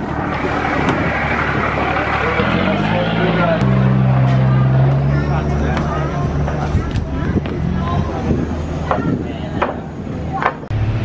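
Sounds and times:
people's voices: 0.0s - 10.7s
boat engine droning: 0.0s - 11.0s.

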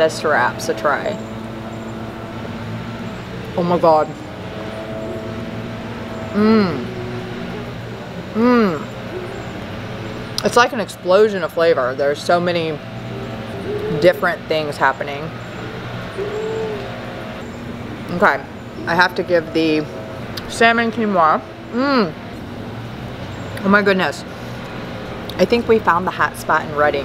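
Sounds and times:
faint high steady tone: 0.0s - 10.3s
low background drone: 0.0s - 27.0s
low mechanical hum: 0.0s - 27.0s
woman humming mmm: 6.3s - 7.7s, 8.3s - 9.4s, 21.7s - 22.2s.

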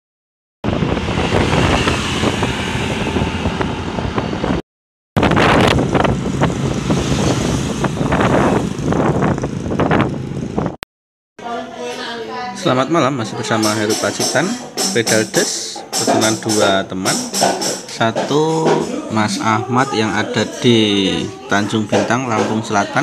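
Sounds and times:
vehicle road noise: 0.6s - 4.6s, 5.2s - 10.8s
wind rumbling on microphone: 0.6s - 4.6s, 5.2s - 10.8s.

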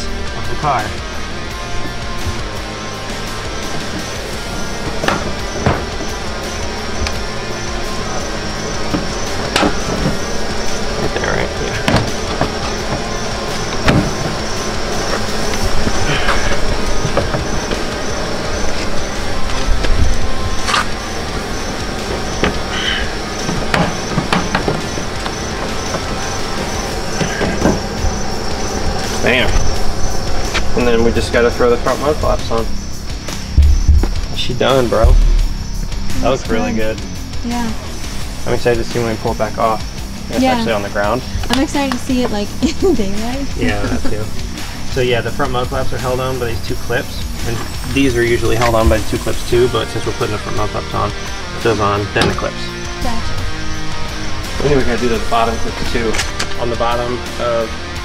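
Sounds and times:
background music: 0.0s - 58.0s.

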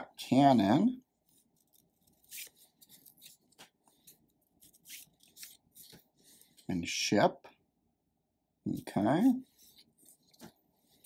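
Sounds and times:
playing cards rustling: 1.2s - 6.7s.

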